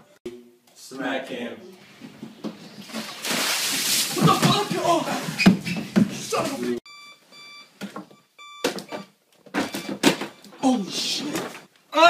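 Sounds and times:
alarm clock beeping: 0:06.9 - 0:10.5.

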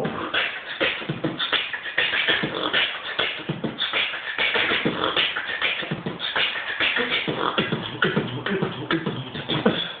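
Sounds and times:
beatboxing mouth drum strokes: 0:00.0 - 0:10.0.

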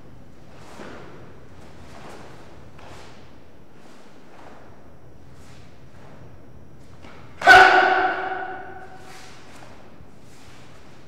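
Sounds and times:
sharp ringing hit: 0:07.4 - 0:09.1.

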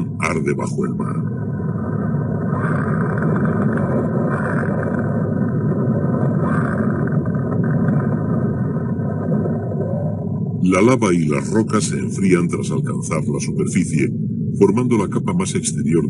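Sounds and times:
lava flowing with deep rushing: 0:00.0 - 0:16.0.

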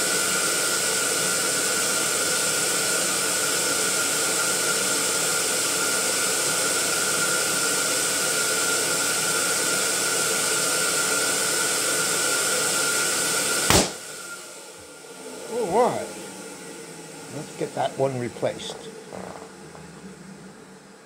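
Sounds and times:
electric air pump running: 0:00.0 - 0:21.0.

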